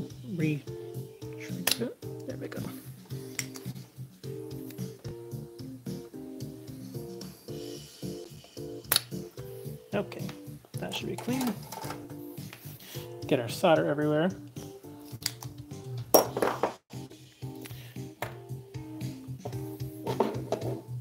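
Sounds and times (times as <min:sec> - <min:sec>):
background music with held notes: 0:00.0 - 0:21.0
desoldering pump snap: 0:01.6 - 0:01.8, 0:08.9 - 0:09.2.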